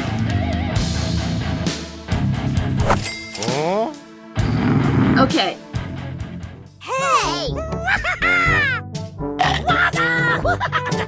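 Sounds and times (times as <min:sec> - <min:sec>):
background rock music: 0:00.0 - 0:11.0
metallic ding: 0:02.9 - 0:03.7.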